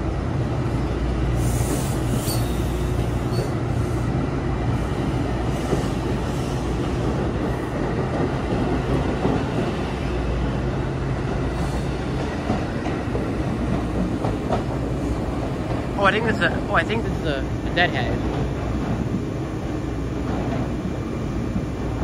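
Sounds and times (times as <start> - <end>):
train wheels rumbling on rails: 0.0 - 22.0.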